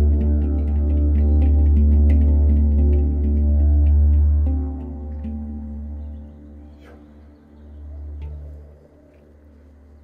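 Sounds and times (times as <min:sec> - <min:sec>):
handpan notes ringing: 0:00.0 - 0:08.7
didgeridoo low drone: 0:00.0 - 0:10.0.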